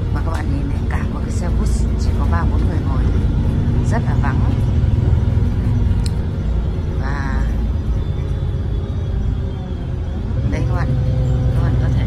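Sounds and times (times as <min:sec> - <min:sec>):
bus engine rumble: 0:00.0 - 0:12.0
voices: 0:00.0 - 0:12.0.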